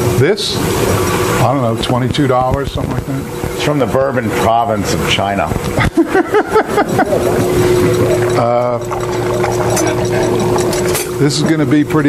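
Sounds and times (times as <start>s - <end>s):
freezer machine humming: 0.0s - 12.0s
steady whine: 0.0s - 12.0s
people talking: 1.4s - 5.6s, 8.0s - 8.9s, 11.2s - 12.0s
people laughing: 5.8s - 8.8s.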